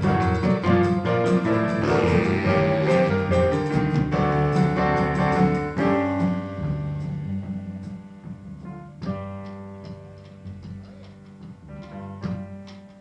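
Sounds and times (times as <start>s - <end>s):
electric keyboard chords: 0.0s - 13.0s.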